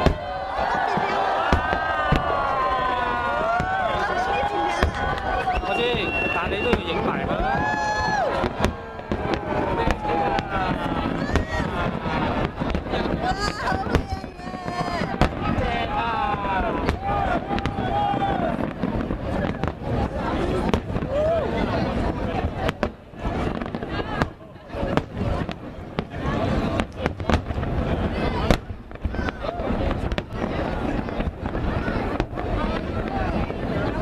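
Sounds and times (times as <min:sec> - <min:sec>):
fireworks bangs and crackle: 0:00.0 - 0:34.0.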